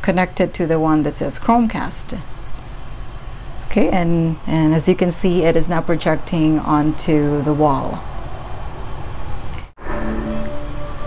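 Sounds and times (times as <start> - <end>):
music with held notes: 9.8 - 11.0.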